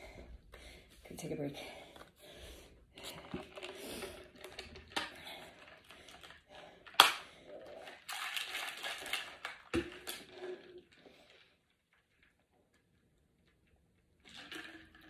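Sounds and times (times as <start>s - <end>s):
plastic bottle handling: 3.0s - 10.6s.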